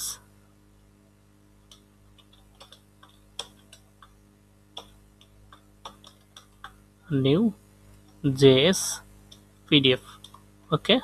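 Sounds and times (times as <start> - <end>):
low electrical hum: 0.0 - 11.0
keyboard typing: 1.7 - 6.8.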